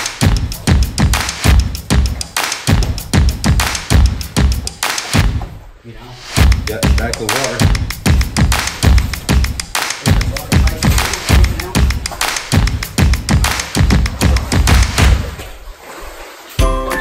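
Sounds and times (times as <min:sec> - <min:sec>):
background music drum beat: 0:00.0 - 0:15.5.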